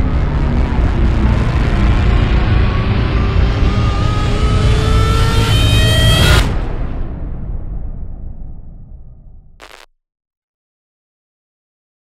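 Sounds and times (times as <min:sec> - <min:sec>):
deep steady rumble: 0:00.0 - 0:04.9
rising pitched whine: 0:09.6 - 0:09.9.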